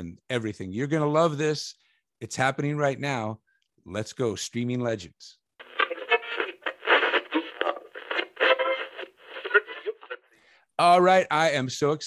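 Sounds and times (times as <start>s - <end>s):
tinny voice through a radio: 5.6s - 10.2s.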